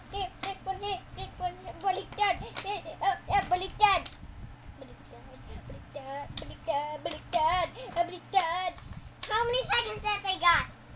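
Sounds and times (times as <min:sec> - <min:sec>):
child singing: 0:00.0 - 0:04.1, 0:04.8 - 0:10.7.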